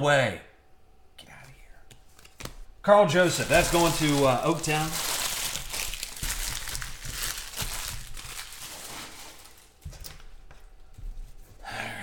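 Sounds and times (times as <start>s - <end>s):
cards rustling: 1.9s - 9.8s
foil wrappers crinkling: 2.2s - 9.9s.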